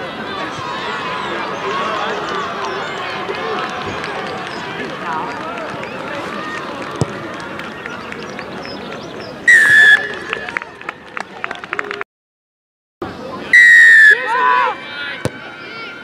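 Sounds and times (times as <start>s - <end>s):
spectators chatting: 0.0s - 12.0s, 13.0s - 16.0s
referee's whistle blast: 9.5s - 10.2s, 13.5s - 14.3s.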